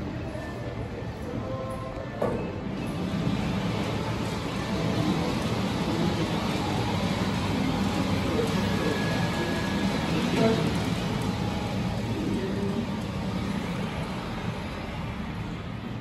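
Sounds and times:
elevator car running noise: 0:00.0 - 0:16.0.

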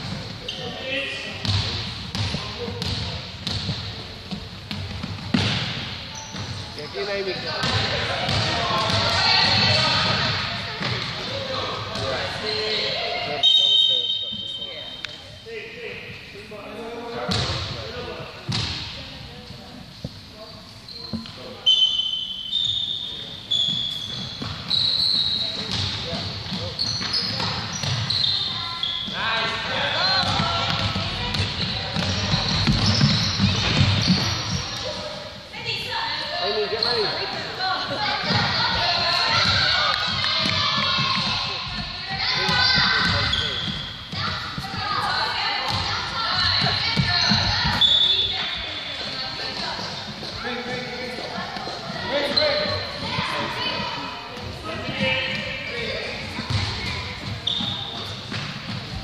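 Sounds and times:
voices and shouts of players: 0:00.0 - 0:59.0
basketball bouncing on wooden floor: 0:25.7 - 0:28.1, 0:30.2 - 0:34.7, 0:56.4 - 0:59.0.

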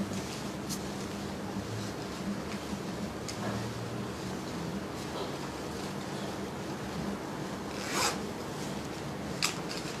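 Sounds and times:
low steady hum: 0:00.0 - 0:10.0
rubbing swish: 0:07.7 - 0:08.8.

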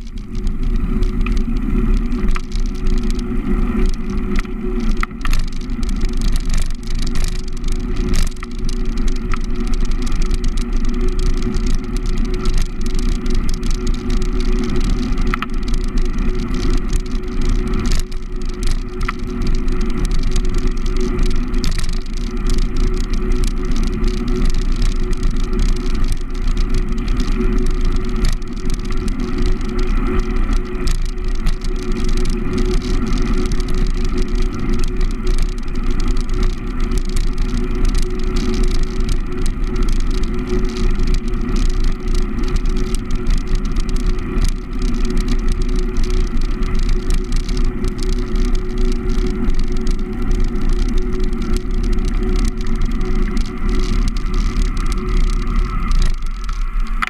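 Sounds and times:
bike rattles and ticks: 0:00.0 - 0:57.0
wind noise on microphone: 0:00.0 - 0:57.0.

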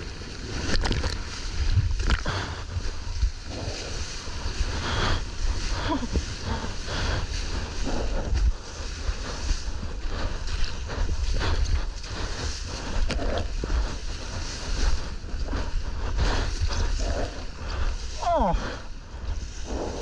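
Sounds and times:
rushing whitewater foam: 0:00.0 - 0:20.0
wind buffeting microphone: 0:00.0 - 0:20.0.

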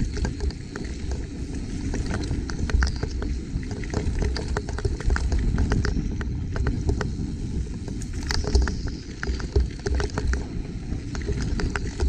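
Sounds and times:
bike clicks and rattles: 0:00.0 - 0:12.0
wind: 0:00.0 - 0:12.0.

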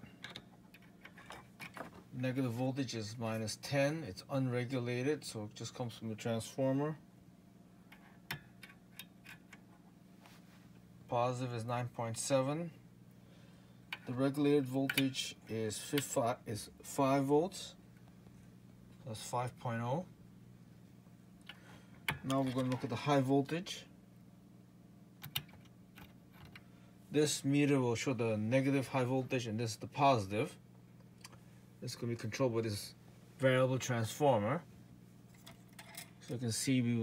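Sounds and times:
faint low hum: 0:00.0 - 0:37.0.

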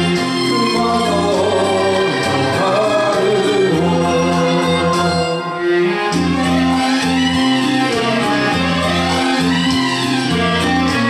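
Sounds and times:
man singing into microphone: 0:00.0 - 0:06.1
backing track with strings: 0:00.0 - 0:11.0.

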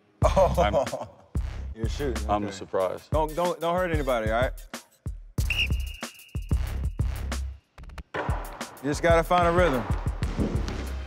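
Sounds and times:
background music with low beat: 0:00.0 - 0:11.0
sports whistle blast: 0:05.4 - 0:07.1.

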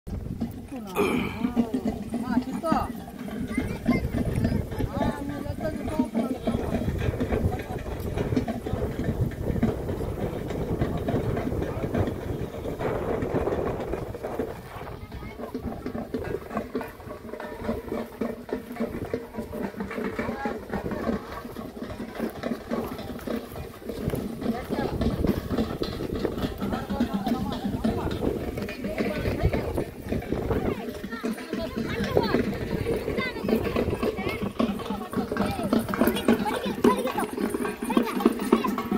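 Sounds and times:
people talking indistinctly: 0:00.3 - 0:38.9.

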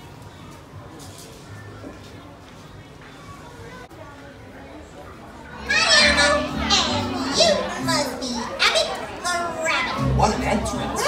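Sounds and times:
high voice over music: 0:05.6 - 0:11.0.

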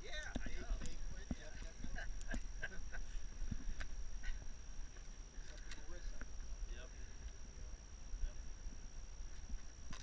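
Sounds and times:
faint high whine: 0:00.0 - 0:10.0
wind rumbling on microphone: 0:00.0 - 0:10.0.

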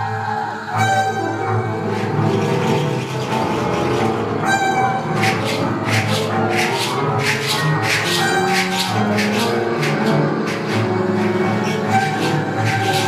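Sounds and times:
sustained pitched tones: 0:00.0 - 0:13.0.

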